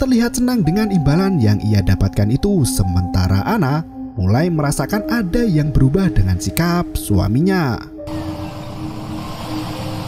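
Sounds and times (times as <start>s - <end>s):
car engine and road noise: 8.0s - 10.0s.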